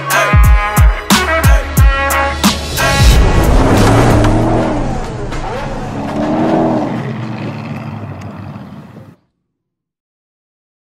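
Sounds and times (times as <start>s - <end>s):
deep steady rumble: 2.6s - 9.2s.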